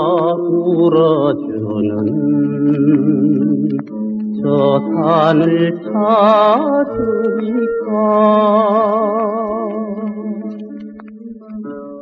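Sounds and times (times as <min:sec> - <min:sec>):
person singing with vibrato: 0:00.0 - 0:12.0
steady musical accompaniment: 0:00.0 - 0:12.0.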